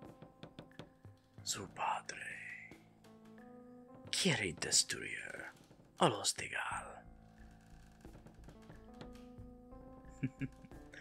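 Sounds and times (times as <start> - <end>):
soft background music: 0.0 - 11.0
person whispering: 1.5 - 2.7, 6.1 - 7.0.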